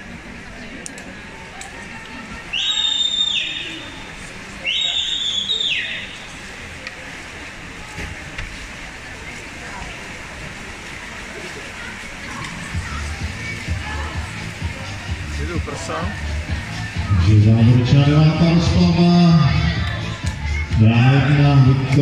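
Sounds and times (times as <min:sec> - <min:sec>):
crowd noise: 0:00.0 - 0:22.0
shrill spectator whistles: 0:02.5 - 0:03.8, 0:04.6 - 0:06.1.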